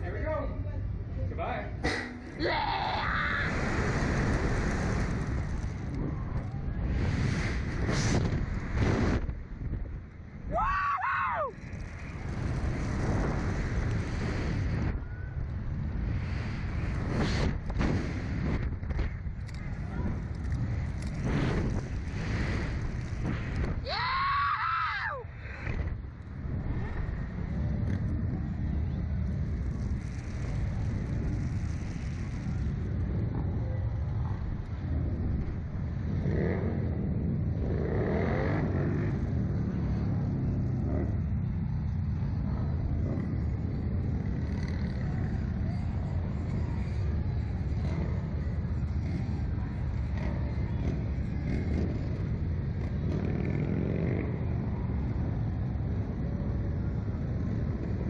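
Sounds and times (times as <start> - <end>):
wind buffeting microphone: 1.8 - 10.6, 11.5 - 24.0
person yelling: 2.4 - 3.5, 23.9 - 25.2.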